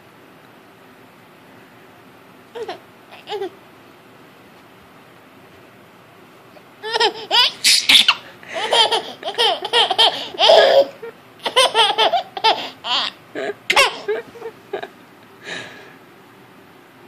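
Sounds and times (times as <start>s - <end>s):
baby laughing: 2.6s - 3.6s, 6.8s - 14.9s.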